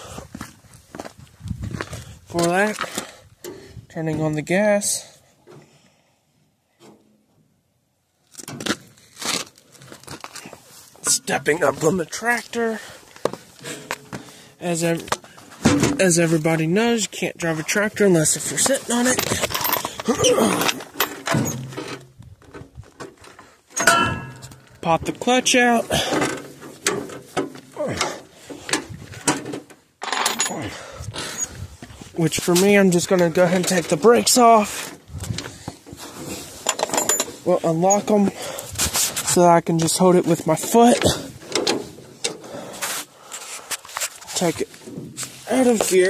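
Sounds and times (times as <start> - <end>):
sharp metal clunk: 23.8 - 24.8.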